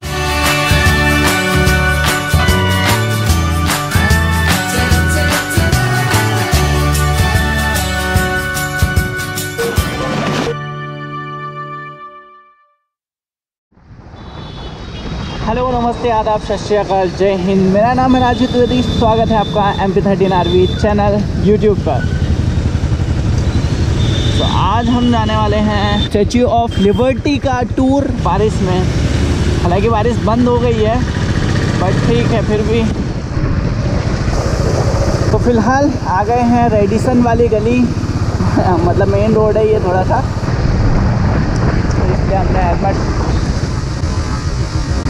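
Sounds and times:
motorcycle engine: 18.4s - 26.5s, 27.2s - 45.0s
tyres on wet road: 28.1s - 45.0s
wind on camera: 32.8s - 36.2s, 40.2s - 45.0s.

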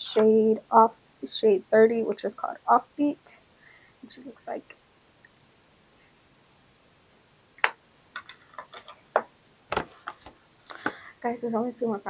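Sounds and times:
object set down knock: 7.6s - 11.0s.

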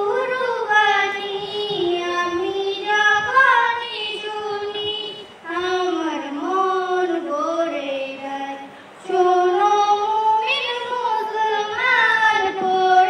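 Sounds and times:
girl singing unaccompanied: 0.0s - 13.0s.

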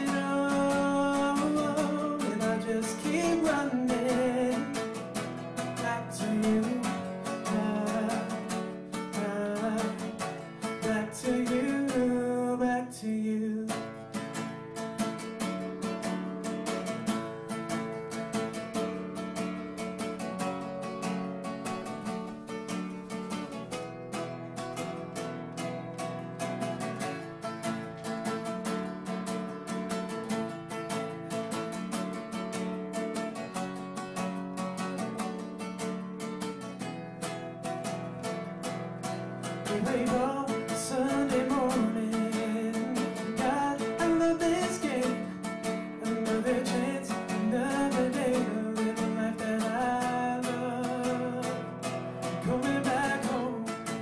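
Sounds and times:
man singing: 0.0s - 14.4s, 39.4s - 54.0s
acoustic guitar strumming: 0.0s - 54.0s.

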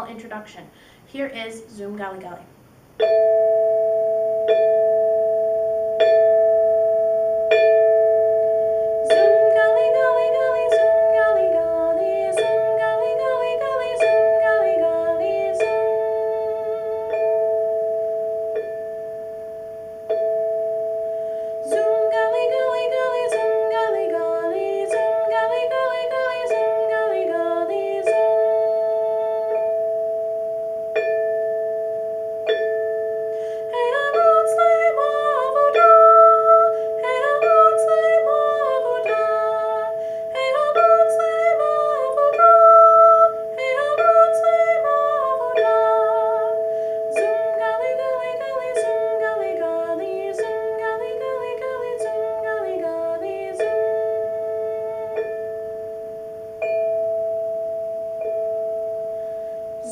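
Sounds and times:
barred instrument struck with mallets: 3.0s - 59.9s
woman singing: 9.0s - 17.6s, 21.6s - 29.9s, 33.6s - 55.6s.

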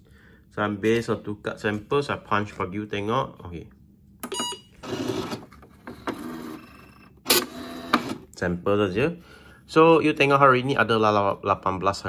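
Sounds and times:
punch card machine buzzing: 4.2s - 8.4s.

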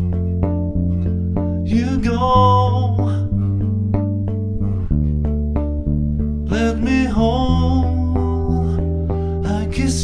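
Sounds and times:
electric bass plucked notes: 0.0s - 10.0s.

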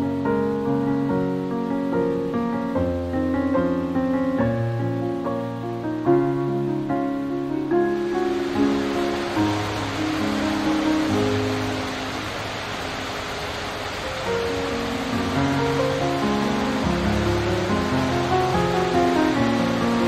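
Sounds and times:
slow instrumental music: 0.0s - 20.0s
waterfall rushing: 0.0s - 20.0s.

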